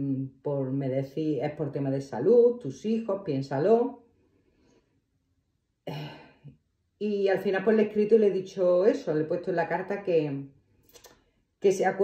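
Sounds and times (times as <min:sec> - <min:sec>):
woman clearing her throat: 0:05.9 - 0:06.4.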